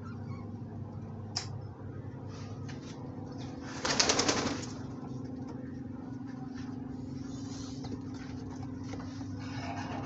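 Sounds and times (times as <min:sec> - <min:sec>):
pigeon wings flapping: 0:03.6 - 0:04.9.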